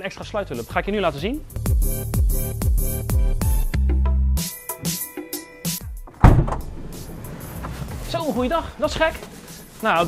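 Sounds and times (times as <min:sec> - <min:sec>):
van door unlatching clunk: 0:06.0 - 0:07.8
sliding door rolling open: 0:06.1 - 0:08.1.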